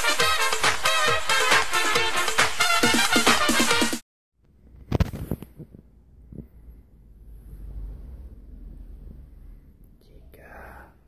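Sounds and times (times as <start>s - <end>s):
soft whisper: 5.6s - 11.0s
low rumble: 5.9s - 10.3s.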